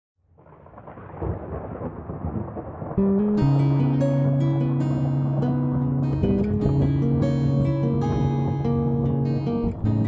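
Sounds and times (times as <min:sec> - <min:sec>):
rolling thunder: 0:00.3 - 0:10.0.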